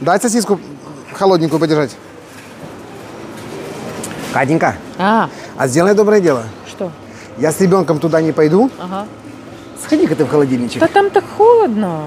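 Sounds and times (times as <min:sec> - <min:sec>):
supermarket background noise: 0:00.0 - 0:12.0.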